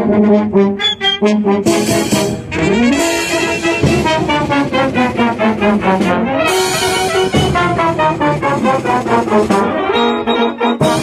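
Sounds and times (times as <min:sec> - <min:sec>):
military brass band playing: 0:00.0 - 0:11.0.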